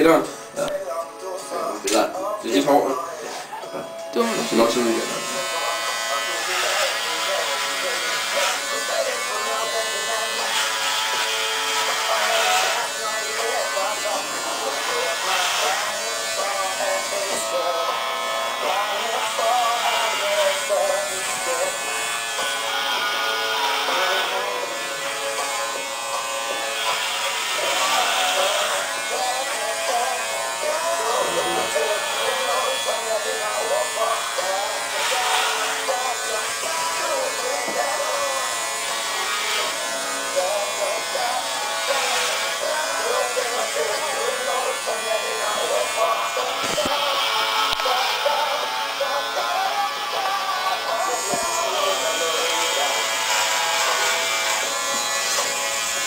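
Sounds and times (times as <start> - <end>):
electric hair clippers buzzing: 0.0 - 56.0
music: 0.0 - 56.0
voices: 43.0 - 53.3.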